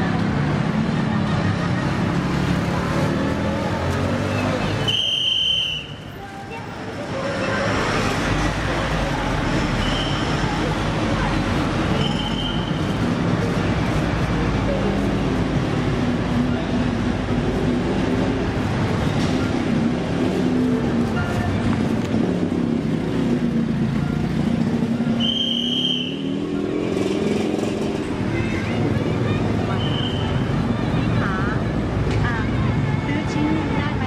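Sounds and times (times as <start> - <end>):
traffic engines passing: 0.0 - 34.0.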